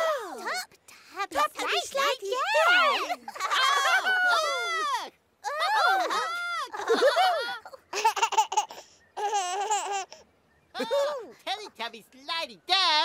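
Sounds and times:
high-pitched laughter: 0:02.6 - 0:10.2
baby giggling: 0:06.6 - 0:10.2.

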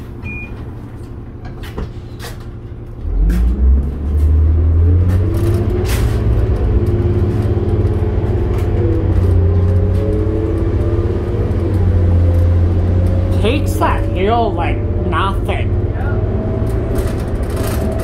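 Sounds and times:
bus diesel engine revving: 0:02.9 - 0:18.0.

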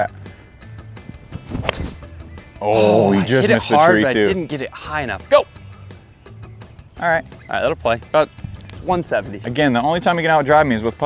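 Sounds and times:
background music: 0:00.0 - 0:11.0
golf club striking ball: 0:01.1 - 0:02.4.

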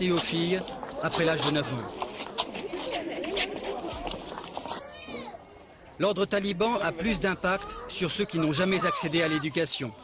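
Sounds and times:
murmur of girls' voices: 0:00.2 - 0:06.0, 0:06.9 - 0:10.0.

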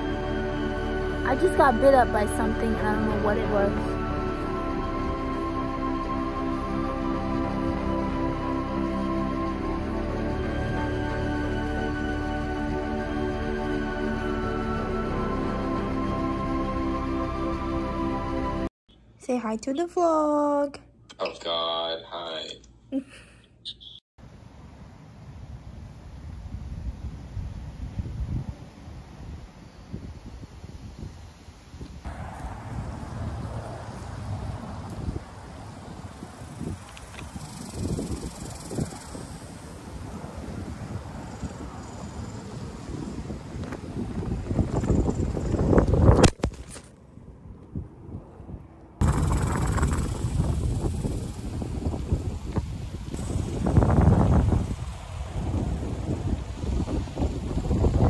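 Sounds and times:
wind gusting against microphone: 0:24.8 - 0:58.0.

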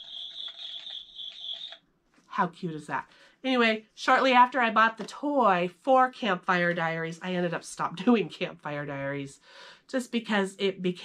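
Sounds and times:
steady high tone: 0:00.0 - 0:01.8
toy campfire crackles: 0:00.0 - 0:01.8.

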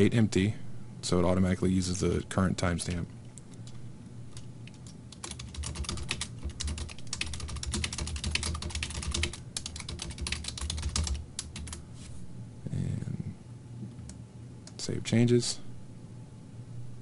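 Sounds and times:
typing on computer keyboard: 0:04.7 - 0:11.8.

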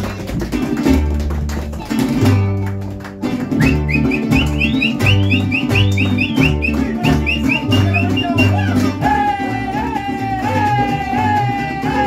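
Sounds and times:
mariachi band playing: 0:00.0 - 0:12.0
plucked bass line: 0:00.0 - 0:12.0
strummed guitars: 0:00.0 - 0:12.0
quick high melody: 0:03.5 - 0:09.3.

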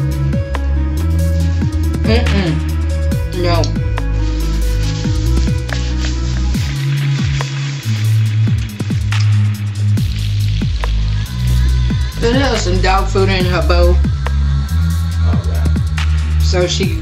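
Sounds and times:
booming bass drums: 0:00.0 - 0:17.0
music with deep bass line: 0:00.0 - 0:17.0
person's voice: 0:02.0 - 0:03.9, 0:11.4 - 0:14.1, 0:15.2 - 0:15.8, 0:16.4 - 0:17.0.

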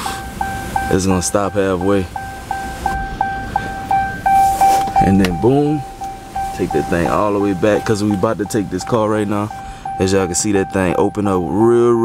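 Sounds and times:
sunroof motor hum: 0:00.0 - 0:11.5
car warning chime: 0:00.0 - 0:12.0.

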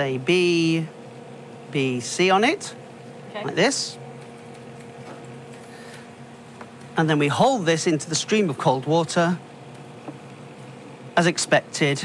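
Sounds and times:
laboratory equipment hum: 0:00.0 - 0:12.0.

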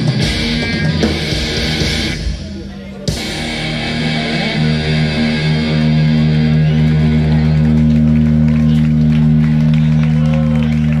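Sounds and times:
guitar strumming: 0:00.0 - 0:10.0
crowd voices: 0:00.0 - 0:11.0
electric guitars and bass drone: 0:00.0 - 0:11.0.

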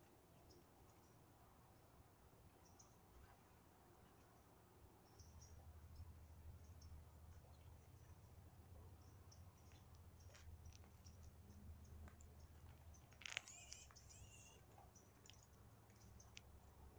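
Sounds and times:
faint low hum: 0:00.0 - 0:16.9
faint high chirps: 0:13.2 - 0:14.7.

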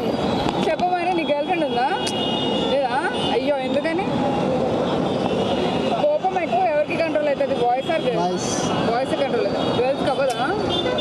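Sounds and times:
street rumble: 0:00.0 - 0:11.0.

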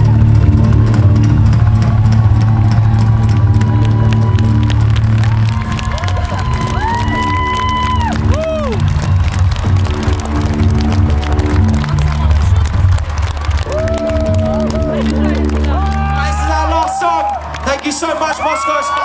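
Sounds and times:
crowd cheering: 0:00.0 - 0:19.0.

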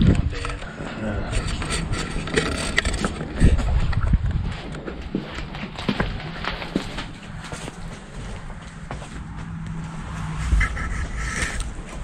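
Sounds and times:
footsteps crunching on debris: 0:02.5 - 0:12.0.

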